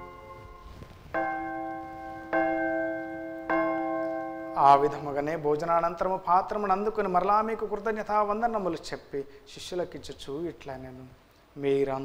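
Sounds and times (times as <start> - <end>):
bell ringing: 0.0 - 5.1.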